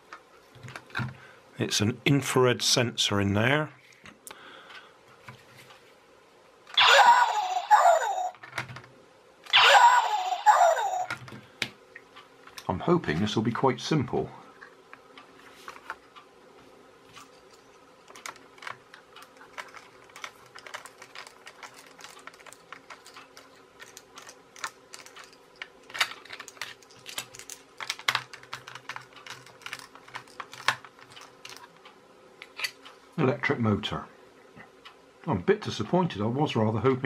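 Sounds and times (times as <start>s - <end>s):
plastic parts clicking and tapping: 17.1s - 32.8s.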